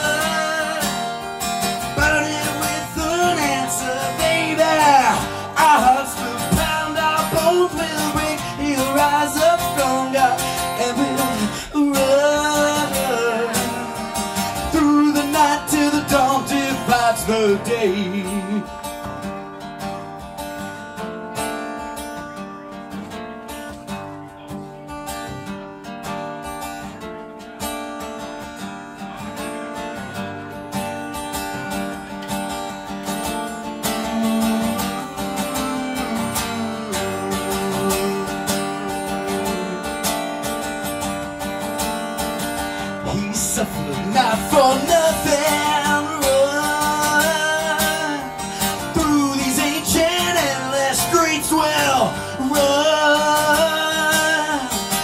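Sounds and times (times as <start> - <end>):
person singing: 0.0 - 19.1, 33.5 - 41.2, 42.8 - 55.0
acoustic guitar chords: 0.0 - 55.0.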